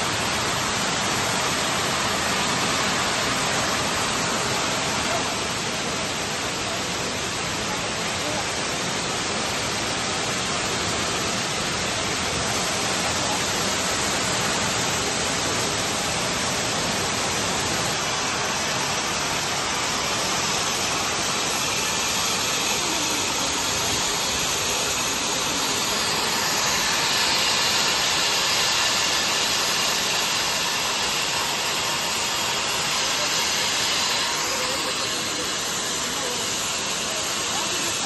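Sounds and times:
hissing industrial machinery din: 0.0 - 38.0.

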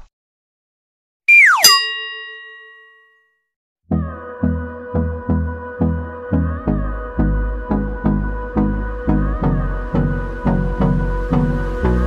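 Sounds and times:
falling tone: 1.3 - 2.4
bell-like ding: 1.5 - 3.4.

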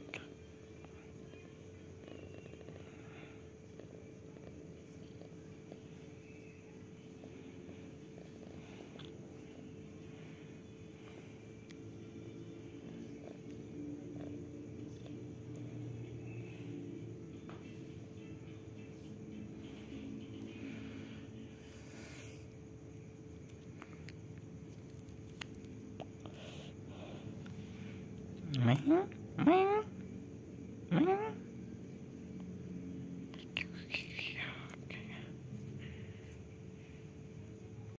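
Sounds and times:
cat purring: 0.0 - 24.6.

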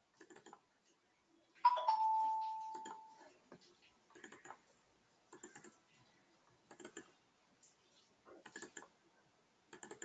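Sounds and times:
two-note chime: 1.7 - 3.1.

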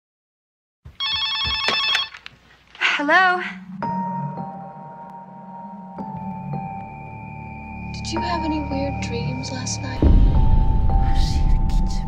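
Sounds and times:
telephone bell ringing: 1.0 - 2.3.

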